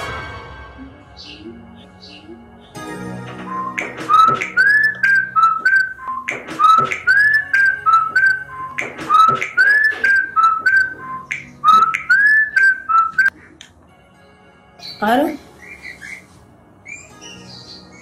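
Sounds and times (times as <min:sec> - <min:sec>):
whistled phone ringtone: 0:03.4 - 0:13.3.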